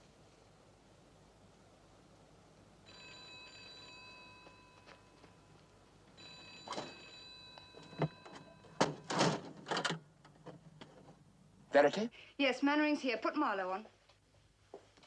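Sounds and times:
telephone ringing: 0:02.8 - 0:05.6, 0:06.2 - 0:09.4.

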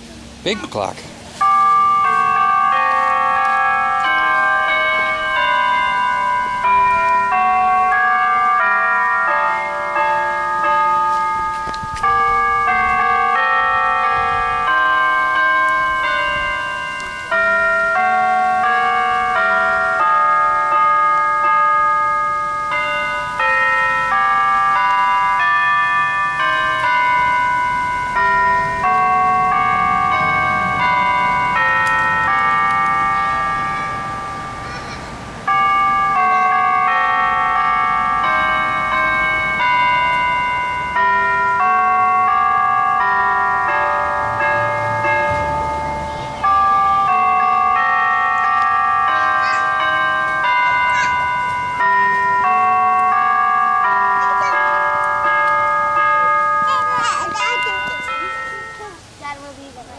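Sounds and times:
tower bells playing a tune: 0:00.0 - 0:59.9.

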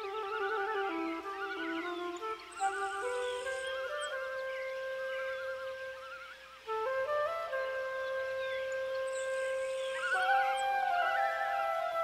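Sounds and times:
soft instrumental background music: 0:00.0 - 0:12.0.

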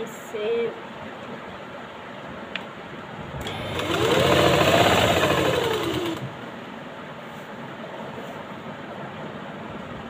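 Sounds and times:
sewing machine stitching: 0:03.4 - 0:06.4.

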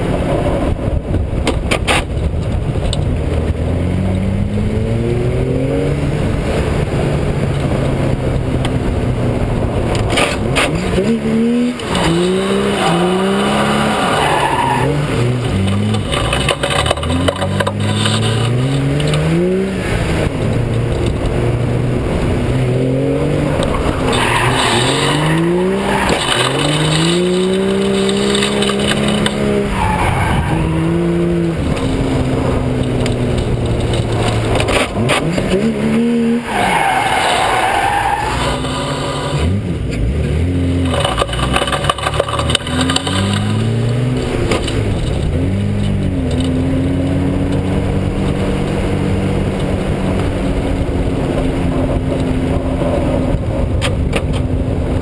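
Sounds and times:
car engine revving: 0:00.0 - 0:55.0
tyres squealing: 0:11.8 - 0:18.7, 0:23.6 - 0:31.0, 0:36.3 - 0:39.4.

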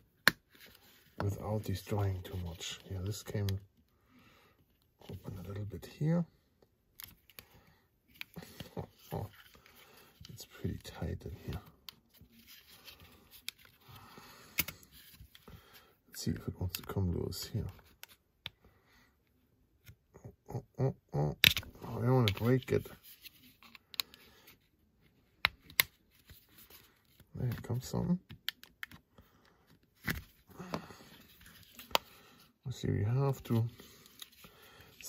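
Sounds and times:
faint handling rustle: 0:00.4 - 0:03.8, 0:08.1 - 0:18.2, 0:21.8 - 0:28.2, 0:28.9 - 0:35.0.

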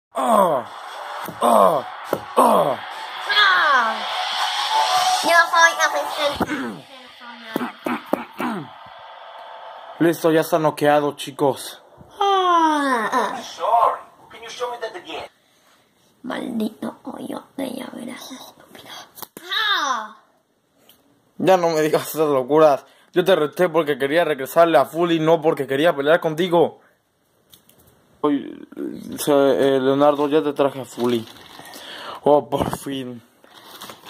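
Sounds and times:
child making breathy noises: 0:12.1 - 0:13.4.

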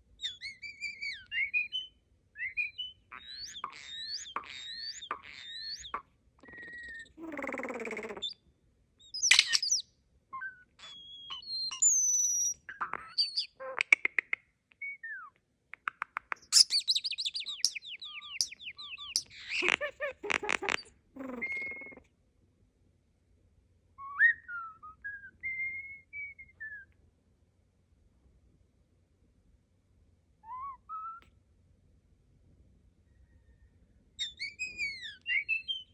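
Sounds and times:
starling singing: 0:00.2 - 0:08.4, 0:09.0 - 0:09.8, 0:10.4 - 0:14.0, 0:16.4 - 0:22.0, 0:34.2 - 0:35.9.

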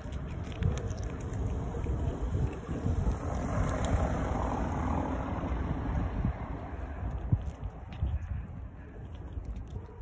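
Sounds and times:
engine passing by: 0:00.0 - 0:08.3
steady low rumble: 0:00.0 - 0:10.0.

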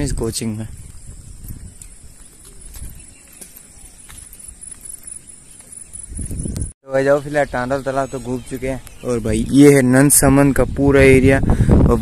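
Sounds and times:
wind rumble on microphone: 0:00.0 - 0:03.2, 0:05.9 - 0:06.8, 0:09.2 - 0:12.0.

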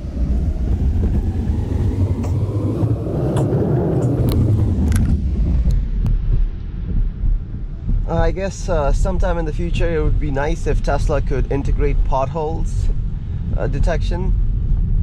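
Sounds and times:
tyre and road rumble: 0:00.0 - 0:12.1.

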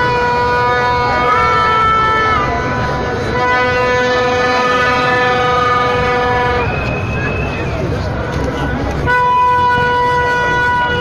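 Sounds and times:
higher horn note: 0:00.0 - 0:06.8
horn sounding long note: 0:00.0 - 0:07.2, 0:09.0 - 0:11.0
large crowd noise: 0:00.0 - 0:11.0.

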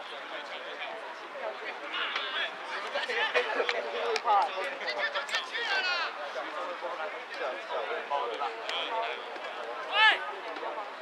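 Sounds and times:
people shouting outdoors: 0:09.9 - 0:10.2.

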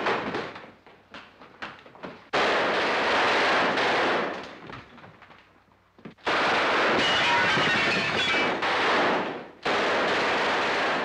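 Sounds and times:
gunfire bursts: 0:02.3 - 0:04.4, 0:06.2 - 0:11.0.

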